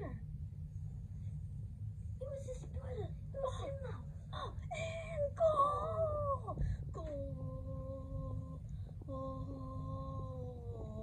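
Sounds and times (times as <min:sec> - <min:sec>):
child making wordless vocal sounds: 0:02.2 - 0:11.0.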